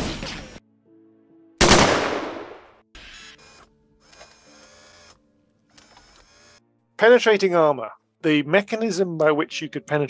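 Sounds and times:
burst of gunfire: 1.6 - 2.7.

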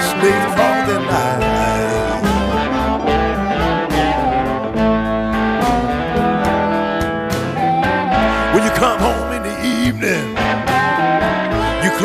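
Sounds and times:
blues band playing: 0.0 - 12.0
electric guitar: 0.0 - 12.0.

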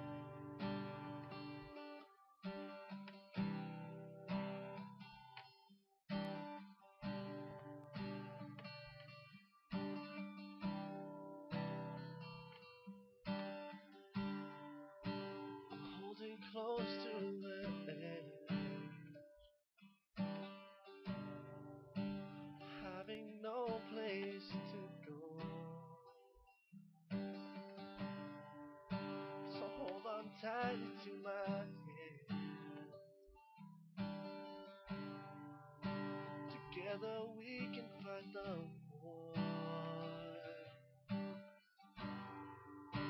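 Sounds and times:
acoustic guitar strummed chords: 0.0 - 43.0.

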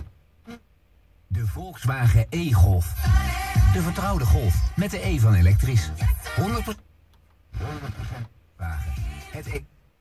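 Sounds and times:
car radio broadcast audio: 0.0 - 10.0.

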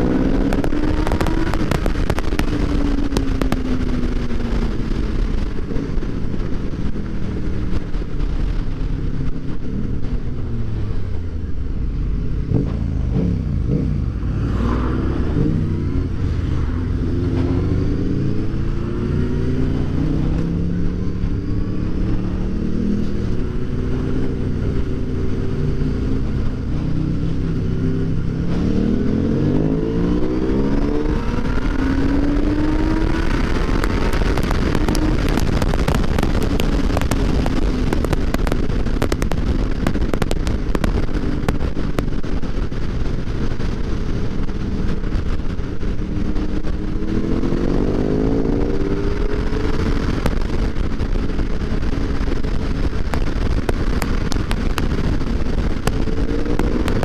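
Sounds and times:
rapid crackling: 0.0 - 8.8, 30.2 - 57.0
motorcycle engine accelerating: 0.0 - 57.0
wind and road noise: 0.0 - 57.0.

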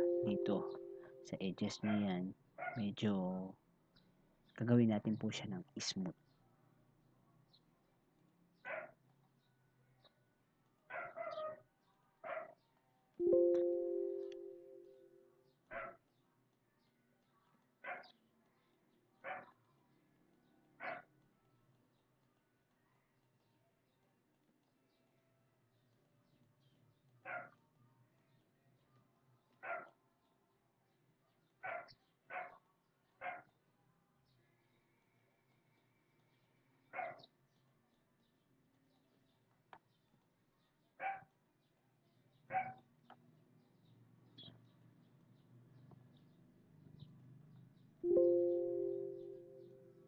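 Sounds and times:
dog barking faintly: 0.0 - 2.9, 8.7 - 9.0, 10.9 - 11.6, 12.2 - 12.6, 17.8 - 18.2, 19.2 - 19.7, 20.8 - 21.1, 27.3 - 27.6, 29.6 - 30.0, 31.6 - 33.6, 37.0 - 37.3, 42.5 - 42.9.

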